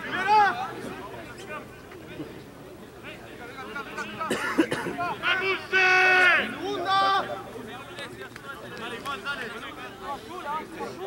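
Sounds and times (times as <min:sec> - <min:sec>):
scattered talk: 0:00.0 - 0:11.0
men shouting: 0:04.9 - 0:07.5.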